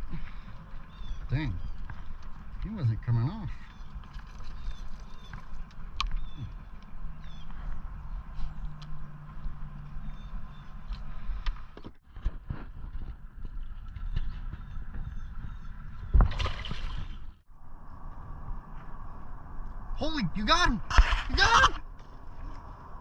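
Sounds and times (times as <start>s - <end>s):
steady low rumble: 17.1s - 23.0s.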